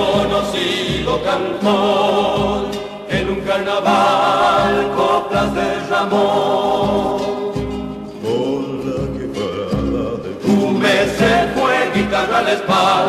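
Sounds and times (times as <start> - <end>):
folk vocal group singing: 0.0 - 13.0
instrumental accompaniment: 0.0 - 13.0.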